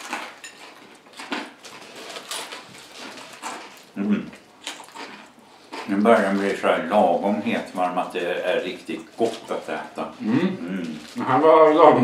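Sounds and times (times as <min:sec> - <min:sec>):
crust crunching: 0:00.0 - 0:12.0
people chewing pizza: 0:00.0 - 0:12.0
person humming: 0:10.2 - 0:11.0.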